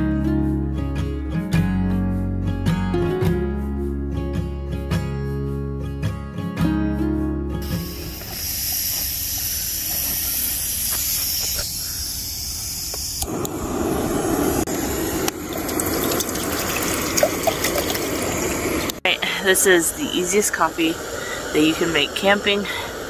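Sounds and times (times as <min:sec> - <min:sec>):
acoustic guitar music: 0:00.0 - 0:09.0
steady hiss: 0:07.6 - 0:23.0
water pouring into metal pot: 0:14.7 - 0:19.0.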